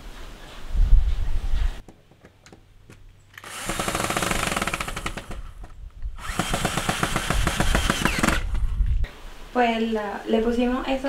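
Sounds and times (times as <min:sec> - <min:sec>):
cordless drill driving screw: 0:03.4 - 0:08.7.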